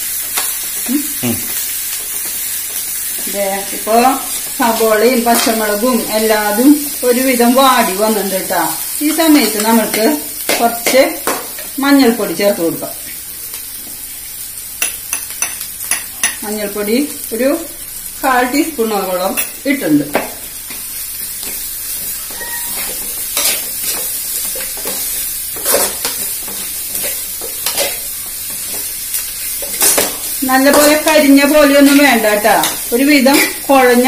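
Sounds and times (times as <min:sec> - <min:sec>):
onions sizzling in oil: 0:00.0 - 0:34.0
metal spoon scraping pan: 0:22.2 - 0:25.0, 0:25.6 - 0:28.0, 0:29.6 - 0:33.6.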